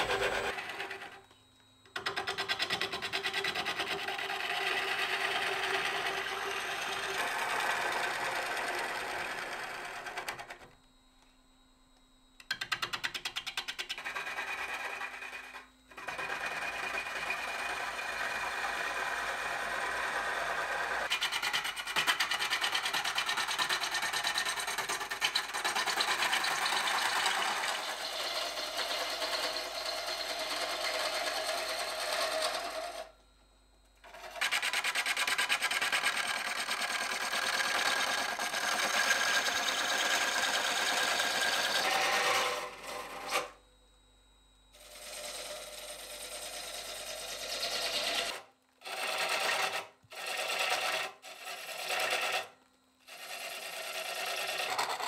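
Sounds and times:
lathe tool scraping wood: 0:00.0 - 0:01.3, 0:02.2 - 0:10.5, 0:13.9 - 0:33.1, 0:34.0 - 0:43.6, 0:44.8 - 0:55.0.

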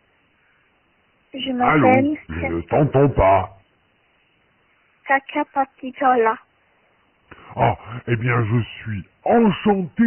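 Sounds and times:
man speaking over telephone: 0:01.6 - 0:03.6, 0:07.5 - 0:10.0
voiced exclamation: 0:01.6 - 0:03.6.

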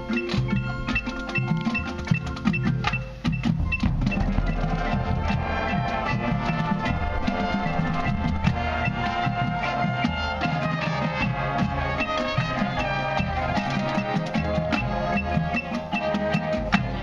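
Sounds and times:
drums: 0:00.0 - 0:17.0
vibraphone and marimba notes: 0:00.0 - 0:17.0
brass chords: 0:03.6 - 0:17.0.

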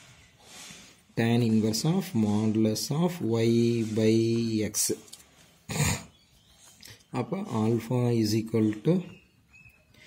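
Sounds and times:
man coughing: 0:05.7 - 0:06.1.

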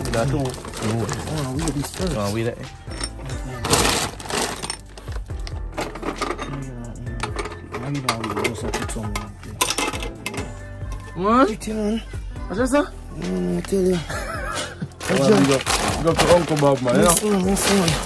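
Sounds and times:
plastic sack rustling: 0:00.0 - 0:02.6, 0:03.4 - 0:05.3, 0:15.0 - 0:18.0
background music with singing: 0:00.0 - 0:15.8.

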